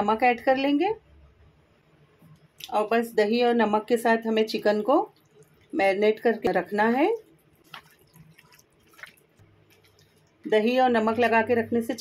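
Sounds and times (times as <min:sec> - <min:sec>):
hand squelching raw chicken: 0:06.9 - 0:10.4.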